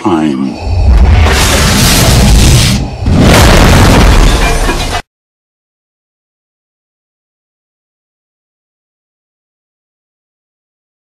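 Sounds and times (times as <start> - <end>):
explosion with deep rumble: 0.7 - 5.0.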